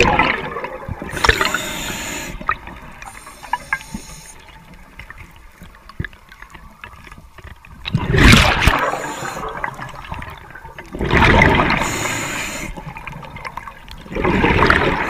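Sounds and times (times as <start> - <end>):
diver exhaling bubbles: 0.0 - 3.8
high regulator hiss: 1.1 - 2.4, 3.0 - 4.5, 11.8 - 12.8.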